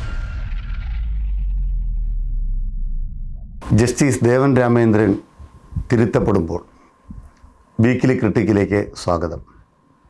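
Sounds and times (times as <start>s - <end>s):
deep bass rumble: 0.0s - 3.8s
whoosh and boom: 0.0s - 3.9s.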